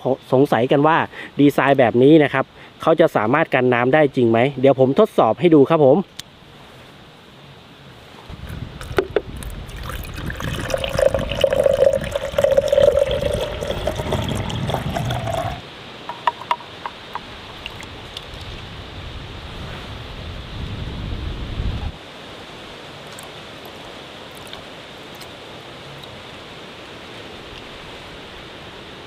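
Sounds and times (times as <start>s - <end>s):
small water splashes: 8.4s - 15.6s, 16.2s - 18.6s
water pouring into glass tank: 8.8s - 15.6s, 17.5s - 17.9s.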